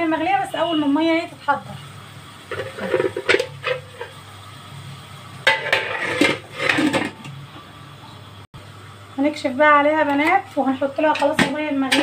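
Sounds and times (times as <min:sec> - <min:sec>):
metal pot lid clattering: 0:02.5 - 0:04.1, 0:05.4 - 0:07.2.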